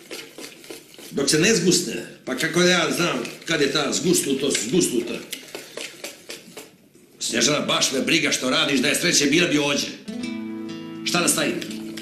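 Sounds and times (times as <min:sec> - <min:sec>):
spoon stirring in plastic bowl: 0:00.0 - 0:07.2, 0:11.3 - 0:12.0.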